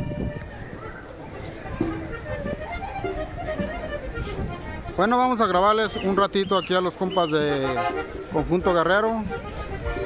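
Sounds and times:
isolated instrument notes: 0.0s - 5.0s
murmur of voices: 0.0s - 10.0s.

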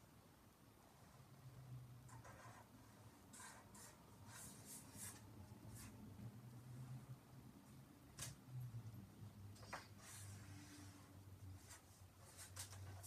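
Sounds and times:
faint low hum: 0.0s - 13.0s
pen scratching on paper: 2.1s - 6.0s.

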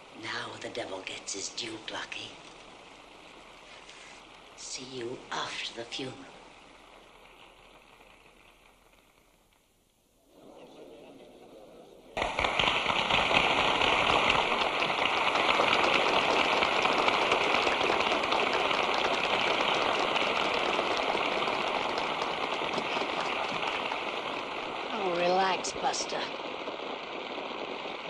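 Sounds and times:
audience applauding: 12.2s - 25.8s.

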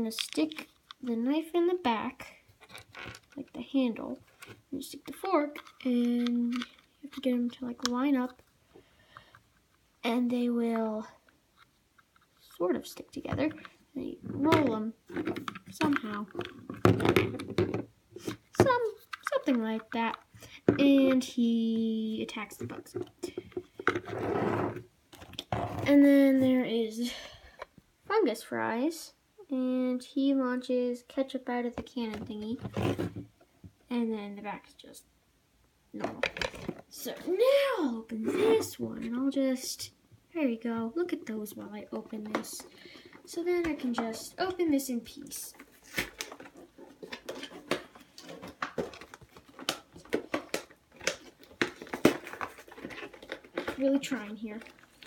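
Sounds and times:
plastic packaging clicking and snapping: 45.6s - 55.0s.

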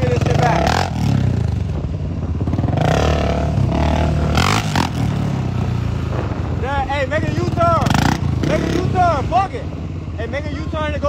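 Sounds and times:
quad bike engines running: 0.0s - 11.0s.

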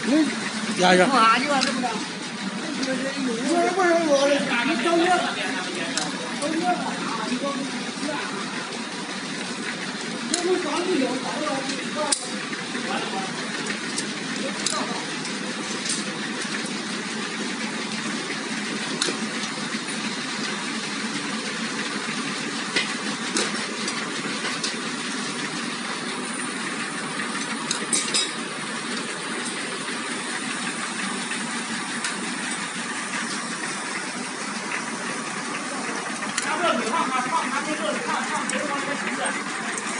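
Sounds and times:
machine running: 0.0s - 39.9s.

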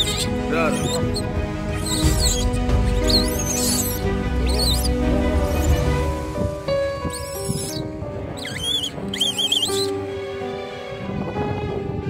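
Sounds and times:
baby monkey distress squeals: 0.0s - 5.9s, 7.1s - 10.0s
background music with held notes: 0.0s - 12.0s.

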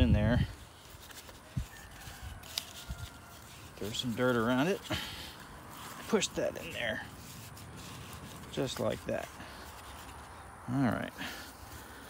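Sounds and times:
rustling and scraping of soil: 0.0s - 12.0s.

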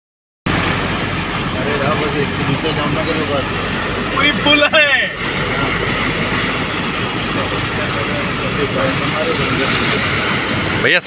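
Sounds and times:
engine and tyres rumbling: 0.5s - 11.0s
water washing against wheels: 0.5s - 11.0s.

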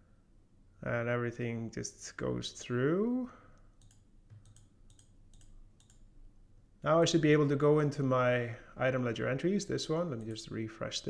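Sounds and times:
man speaking: 0.8s - 3.5s, 6.8s - 11.0s
computer mouse clicks: 3.6s - 6.1s.

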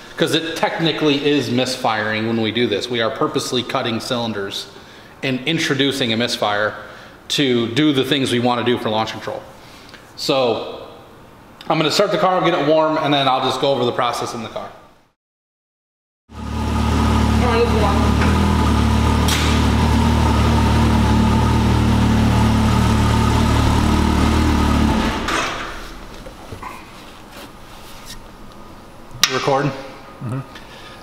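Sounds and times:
engine idling: 16.3s - 25.4s.

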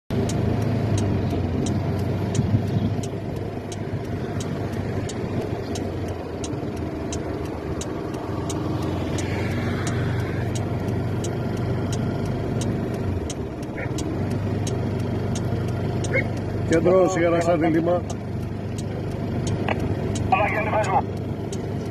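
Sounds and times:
car engine and road noise: 0.1s - 21.9s
light regular ticking: 0.1s - 21.9s.

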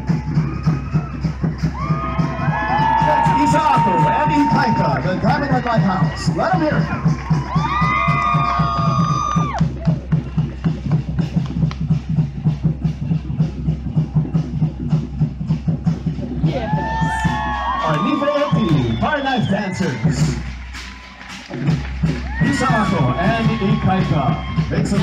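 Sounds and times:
long held shouts: 0.0s - 9.7s, 16.4s - 20.2s, 22.2s - 25.0s
rapid drumming: 0.0s - 25.0s.

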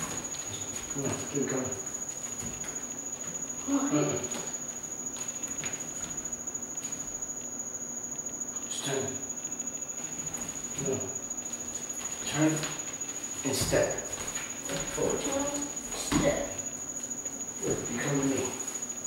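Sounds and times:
steady high-pitched whine: 0.0s - 19.0s
bare feet thumping on hardwood: 15.9s - 16.5s.

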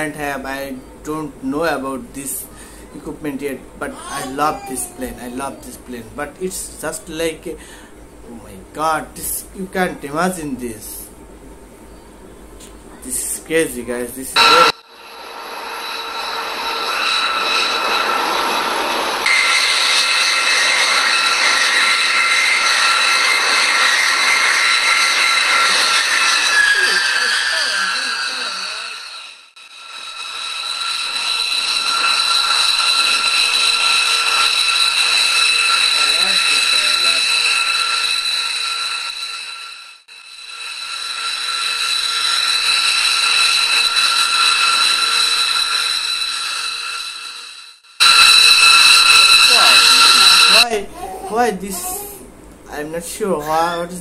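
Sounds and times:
jet engines whining: 14.4s - 50.7s.

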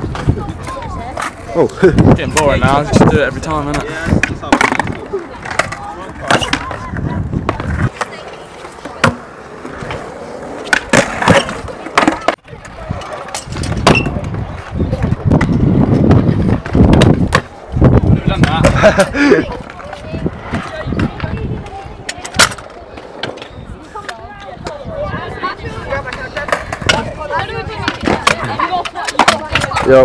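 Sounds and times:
wheels rolling on concrete: 0.0s - 30.0s.

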